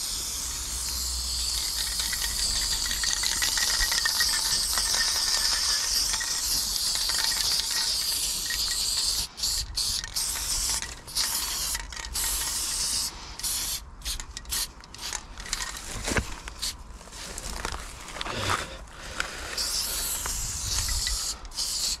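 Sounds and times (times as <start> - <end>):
spray paint can hissing: 0.0 - 15.7, 19.5 - 22.0.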